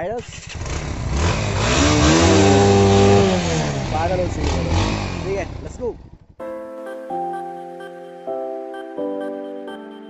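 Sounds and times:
motorcycle engine revving: 0:00.0 - 0:06.4.

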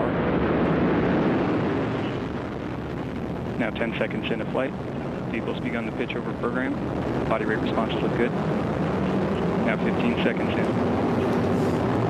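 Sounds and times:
rocket engines roaring: 0:00.0 - 0:12.0.

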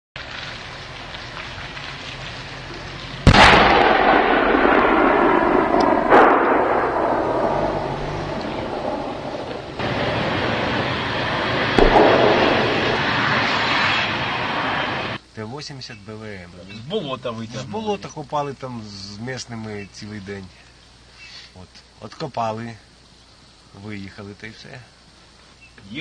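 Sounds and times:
tank engine and tracks roaring: 0:00.2 - 0:15.2.

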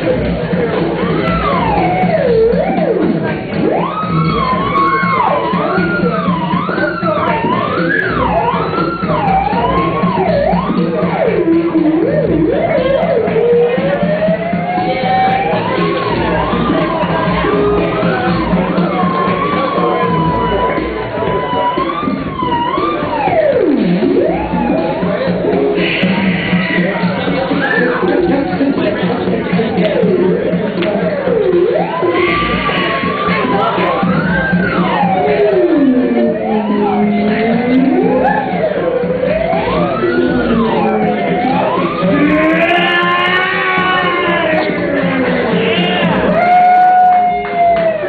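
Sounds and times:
electronic backing music: 0:00.0 - 0:48.0
pulsing low bass line: 0:00.0 - 0:48.0
theremin sliding in pitch: 0:00.0 - 0:48.0.

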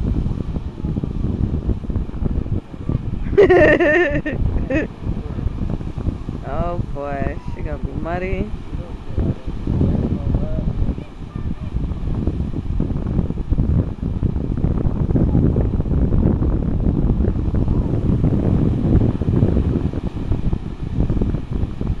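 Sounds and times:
surf breaking on shore: 0:00.0 - 0:22.0
wind buffeting microphone: 0:00.0 - 0:22.0.

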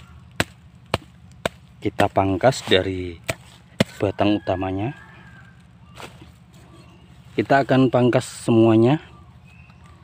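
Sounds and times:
blade chopping woody roots: 0:00.0 - 0:04.1.

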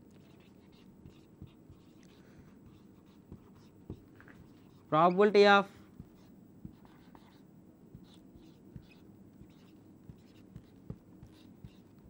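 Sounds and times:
marker pen writing on whiteboard: 0:00.1 - 0:05.3, 0:05.9 - 0:12.0.

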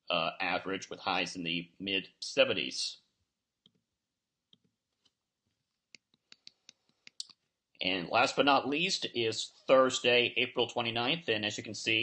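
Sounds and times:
computer mouse clicks: 0:05.9 - 0:07.4.

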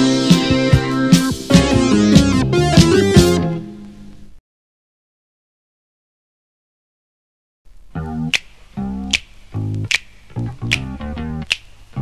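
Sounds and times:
bass guitar: 0:00.0 - 0:03.8, 0:07.8 - 0:12.0
guitar notes: 0:00.0 - 0:03.9, 0:07.9 - 0:12.0.

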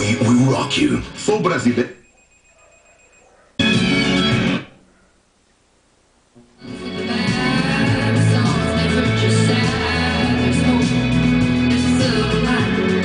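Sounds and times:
radio music through speakers: 0:00.0 - 0:05.2, 0:06.6 - 0:13.0
guitar-led song: 0:03.6 - 0:04.7, 0:06.6 - 0:13.0.

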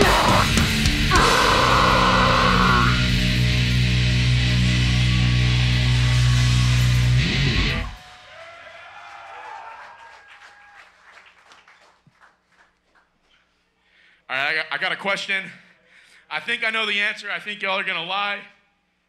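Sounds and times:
distorted guitar and bass chord: 0:00.0 - 0:08.0.

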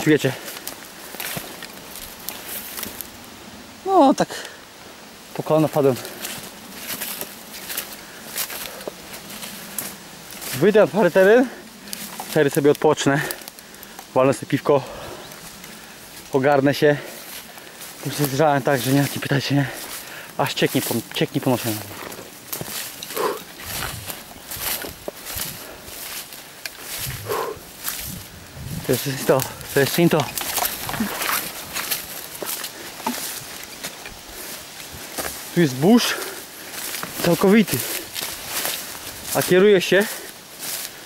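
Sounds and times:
footsteps through undergrowth: 0:00.0 - 0:41.0
leaves and stems brushing: 0:00.0 - 0:41.0
twigs crackling: 0:00.0 - 0:41.0
man breathing out heavily: 0:14.8 - 0:16.1, 0:19.7 - 0:20.4, 0:23.1 - 0:24.0, 0:24.6 - 0:28.3.

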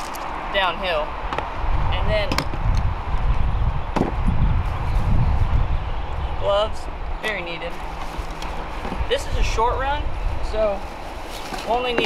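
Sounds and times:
steady low rumble: 0:00.0 - 0:11.3.

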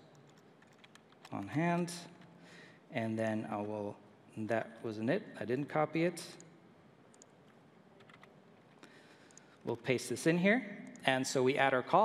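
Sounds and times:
computer keyboard keystrokes: 0:00.1 - 0:01.9, 0:08.0 - 0:09.4.

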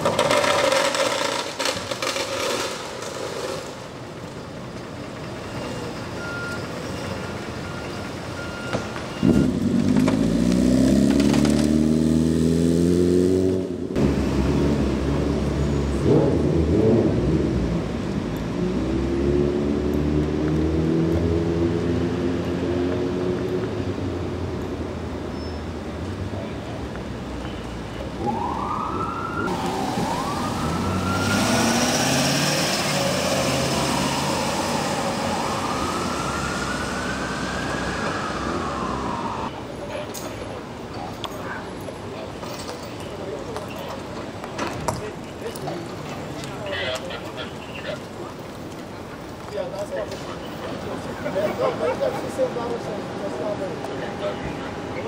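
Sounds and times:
vehicle engine accelerating: 0:09.2 - 0:24.2, 0:29.5 - 0:39.5
ambulance siren wailing: 0:28.1 - 0:39.5.

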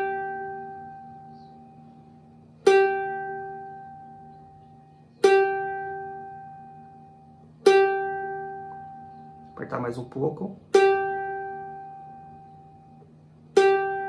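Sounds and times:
plucked cavaquinho string: 0:00.0 - 0:14.0.

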